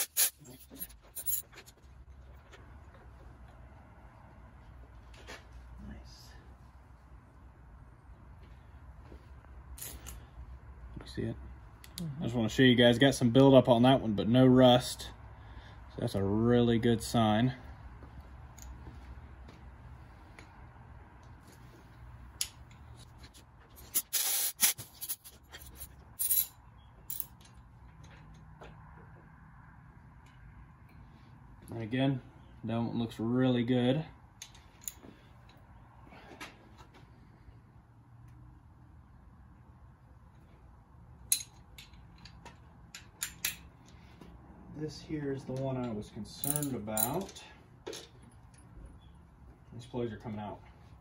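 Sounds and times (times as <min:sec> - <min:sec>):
ratchet wrench clicking: 0:00.0 - 0:00.4
air blowgun bursts: 0:00.0 - 0:00.5, 0:23.9 - 0:25.3.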